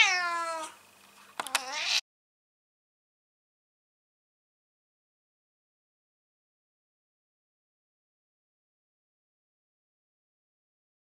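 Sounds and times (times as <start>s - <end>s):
cat meowing: 0.0s - 0.8s, 1.4s - 2.0s.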